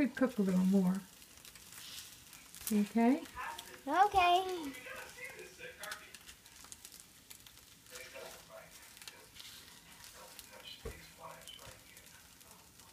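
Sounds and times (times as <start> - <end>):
eggs sizzling in a pan: 0.0 - 12.9.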